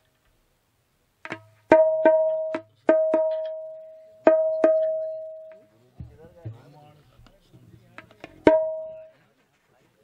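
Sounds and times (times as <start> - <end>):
instrument struck on ringing note: 1.7 - 5.7, 8.4 - 9.1.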